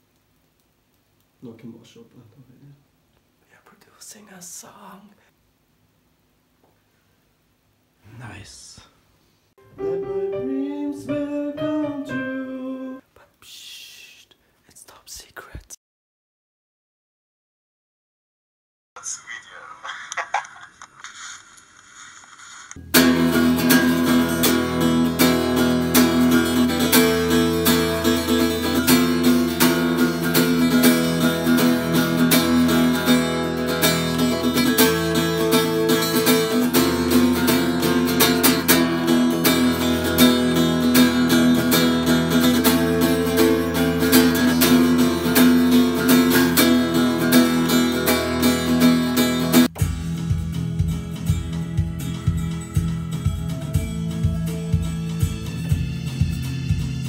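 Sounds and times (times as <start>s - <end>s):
acoustic guitar strumming chords: 9.6s - 13.0s, 22.8s - 57.0s
quiet music with low beat: 49.7s - 57.0s.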